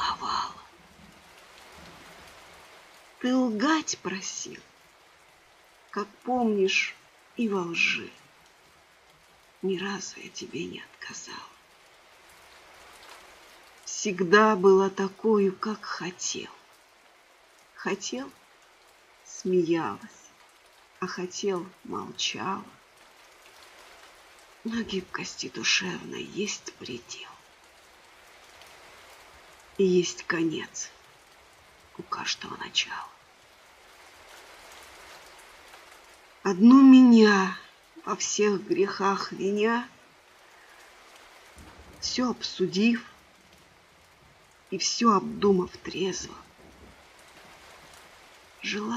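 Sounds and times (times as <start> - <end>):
rain falling: 0.0 - 48.9.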